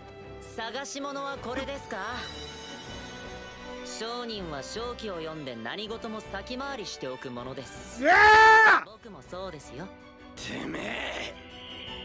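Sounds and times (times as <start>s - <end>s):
man shouting excitedly: 8.0s - 8.9s.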